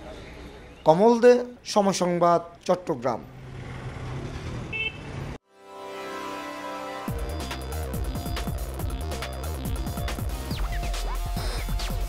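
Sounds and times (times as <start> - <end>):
street traffic: 0.0 - 5.4
auto-rickshaw engines passing: 3.2 - 5.4
high horn beep: 4.7 - 5.1
electronic music: 5.5 - 12.0.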